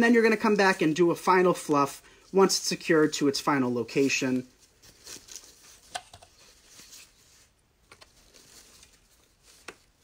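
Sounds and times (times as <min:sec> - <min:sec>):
wired ribbon rustling and crinkling: 0:02.2 - 0:10.0.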